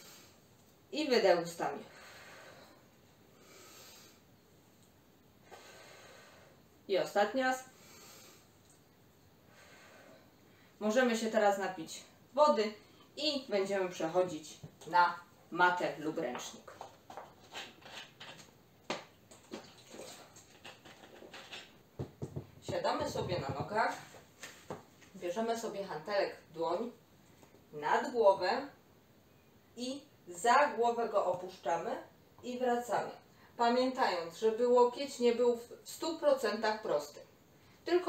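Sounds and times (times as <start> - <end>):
woman breathing slowly: 0.0 - 0.4, 1.8 - 4.4, 5.4 - 6.8, 7.7 - 8.7, 9.3 - 10.8.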